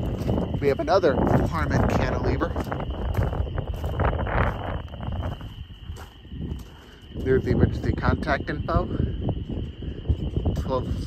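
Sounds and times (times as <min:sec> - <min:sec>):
footsteps crunching on gravel: 0:00.0 - 0:11.0
wind rumble on microphone: 0:00.0 - 0:11.0.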